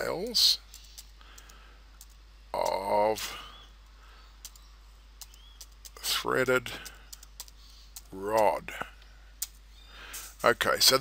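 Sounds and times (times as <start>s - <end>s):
faint keyboard keystrokes: 0.7s - 2.8s, 4.4s - 6.1s, 6.7s - 8.6s.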